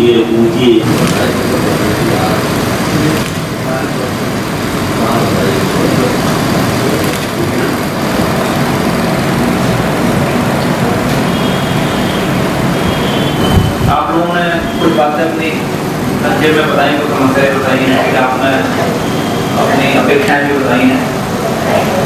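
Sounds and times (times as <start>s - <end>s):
many people talking: 0.0s - 22.0s
steady background noise: 0.0s - 22.0s.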